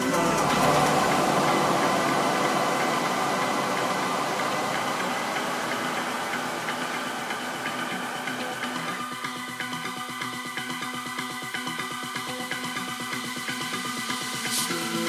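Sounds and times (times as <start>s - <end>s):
noisy synth wash: 0.0s - 15.0s.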